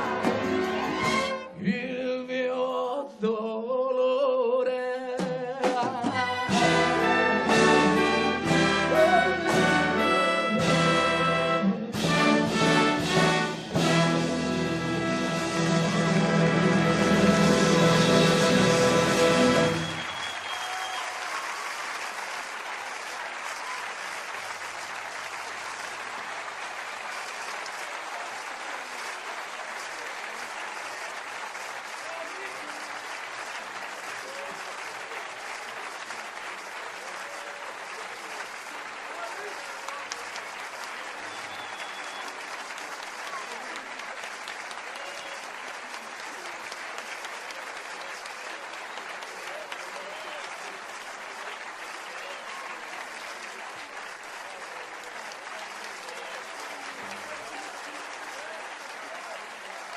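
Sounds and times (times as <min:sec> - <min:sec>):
audience applauding: 0:00.0 - 0:01.6, 0:05.6 - 0:59.9.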